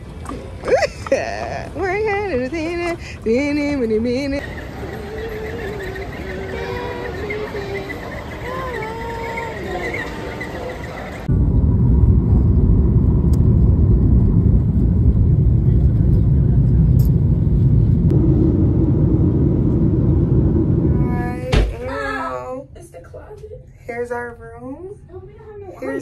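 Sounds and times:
wordless wavering singing voice: 3.4 - 10.6.

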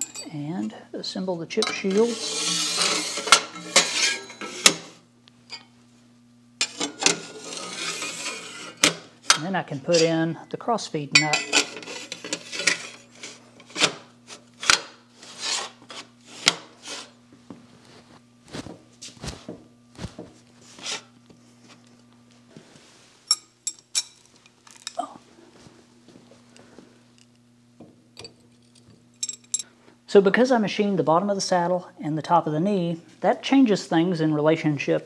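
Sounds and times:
sheet metal scraping on iron: 1.6 - 5.0, 6.6 - 10.3, 11.2 - 17.2
metal clinks and knocks: 28.2 - 29.7.

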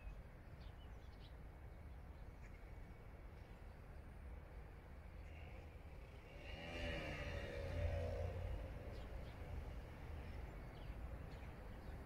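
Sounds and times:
vehicle engine speeding up: 6.3 - 9.4.

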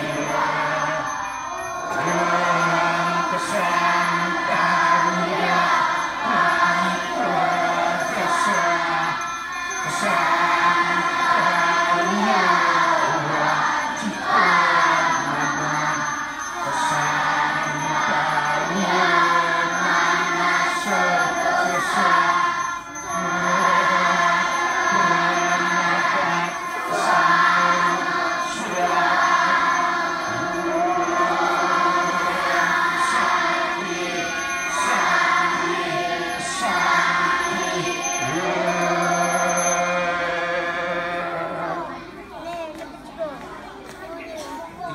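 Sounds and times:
voices chanting devotional song: 0.0 - 44.9.

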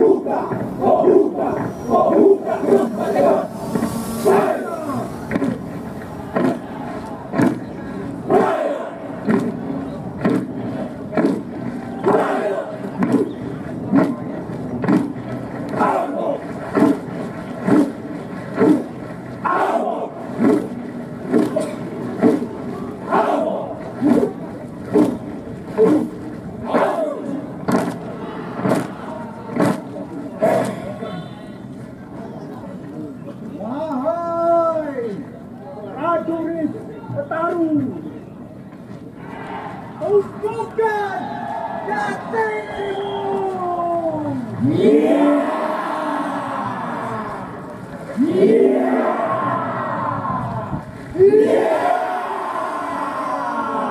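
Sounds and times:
group shouting war chant: 0.0 - 5.1, 8.3 - 9.0, 12.0 - 12.8, 15.8 - 16.4, 19.4 - 20.2, 23.1 - 24.2, 26.7 - 27.4, 44.6 - 47.6, 48.2 - 53.9
men shouting a war chant: 0.0 - 5.1.

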